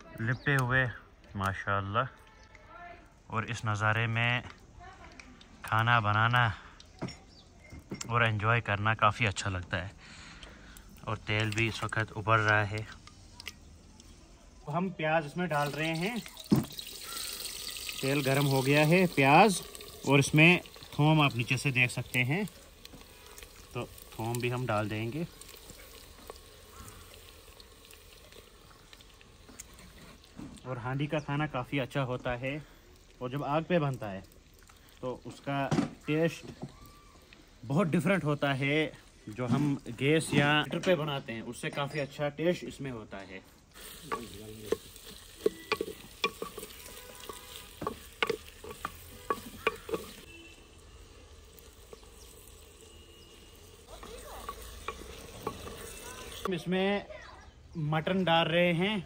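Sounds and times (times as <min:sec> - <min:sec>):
small crackles: 0:00.1 - 0:14.8, 0:15.4 - 0:41.0, 0:43.1 - 0:56.5
onions sizzling in oil: 0:10.9 - 0:56.7
metal spoon scraping clay pot: 0:43.8 - 0:56.5.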